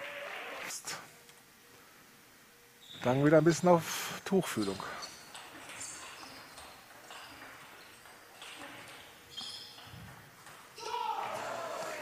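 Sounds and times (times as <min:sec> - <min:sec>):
shoe soles squeaking: 0:02.8 - 0:03.6, 0:04.5 - 0:12.0
person shouting: 0:10.8 - 0:12.0.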